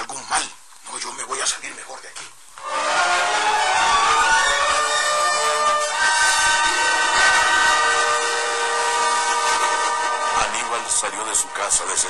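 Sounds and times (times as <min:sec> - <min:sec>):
eerie drone of overlapping tones: 0:02.6 - 0:12.0
hiss: 0:05.9 - 0:11.3.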